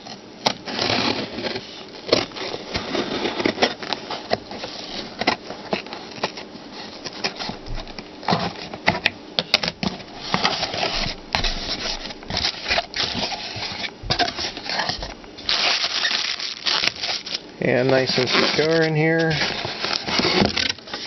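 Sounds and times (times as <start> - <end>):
cardboard rustling and scraping: 0.0 - 21.0
plastic bag crinkling: 10.0 - 21.0.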